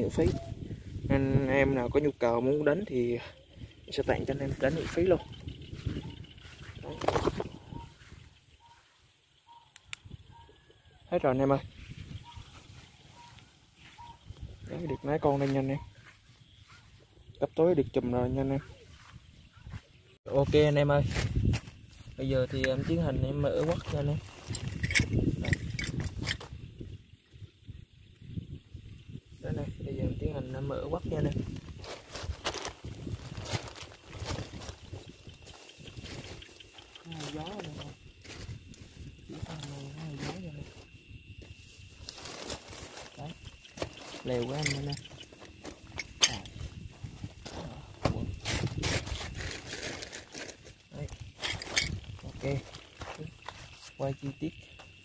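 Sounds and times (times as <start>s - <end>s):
wind rumble on microphone: 0.0s - 8.8s, 9.5s - 54.6s
handling on plastic tarp: 31.4s - 36.2s, 41.6s - 44.9s, 48.4s - 51.0s.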